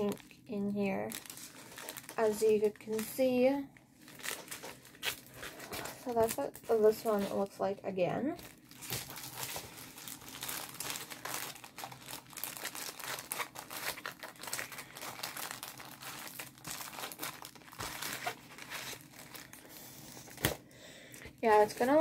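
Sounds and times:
plastic packaging crinkling: 0:00.0 - 0:22.0.

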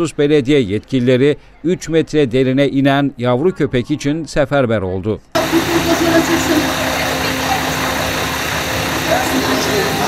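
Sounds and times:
vehicle engine idling: 0:05.4 - 0:10.0.

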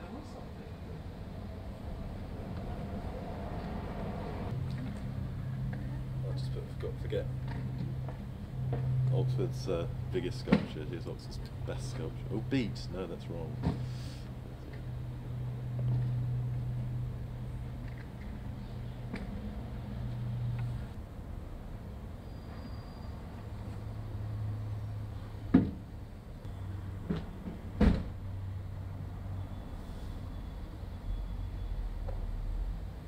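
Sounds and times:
low steady street hum: 0:00.0 - 0:33.0.

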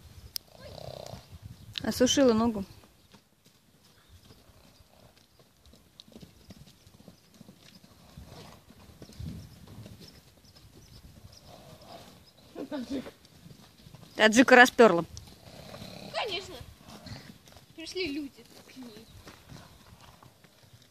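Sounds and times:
horse hoofbeats on soft ground: 0:00.4 - 0:20.9.

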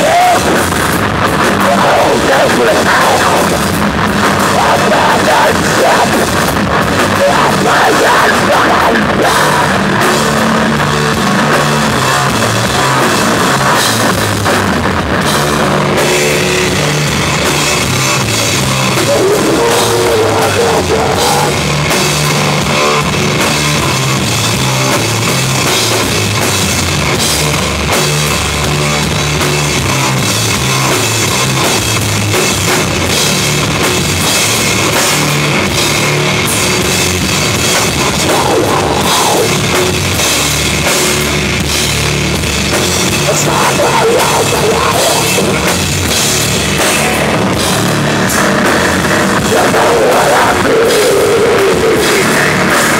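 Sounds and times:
distorted guitar and bass: 0:00.0 - 0:52.9
drum kit: 0:00.0 - 0:52.9.

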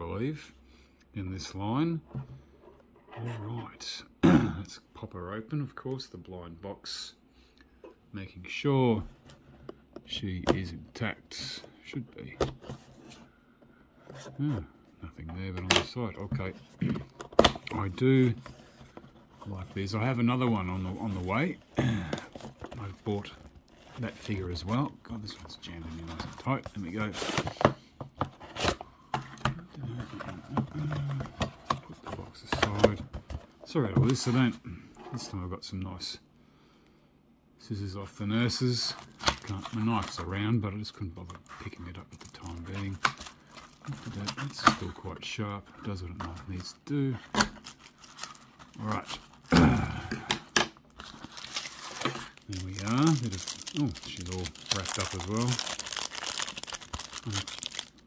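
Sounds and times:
paper crinkling and rustling: 0:45.8 - 0:49.5, 0:50.9 - 0:58.0.

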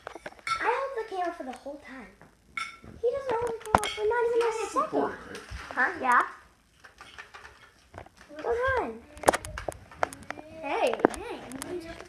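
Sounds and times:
child making wordless sounds: 0:03.0 - 0:05.1, 0:08.3 - 0:09.5, 0:10.1 - 0:12.0.

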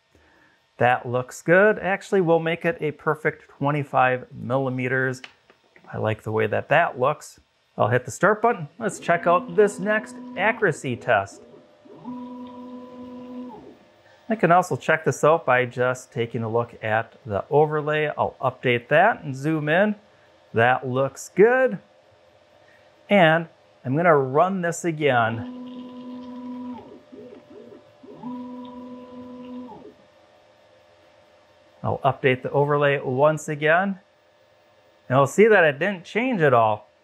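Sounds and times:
stepper motors whining: 0:08.7 - 0:13.8, 0:25.4 - 0:30.0.

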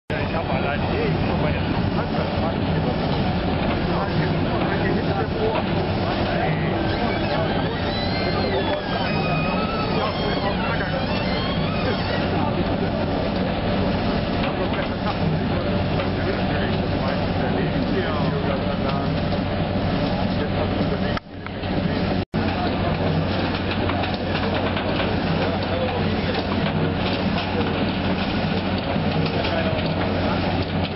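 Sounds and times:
people chattering: 0:00.1 - 0:30.9
washing machine droning: 0:00.1 - 0:30.9.

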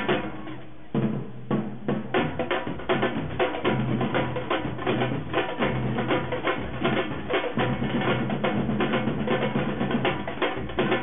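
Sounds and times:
marching snare and bass drums: 0:00.0 - 0:11.0.

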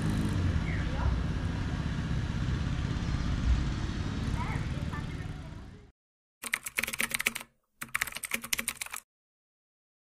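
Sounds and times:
computer keyboard typing: 0:06.4 - 0:09.1.

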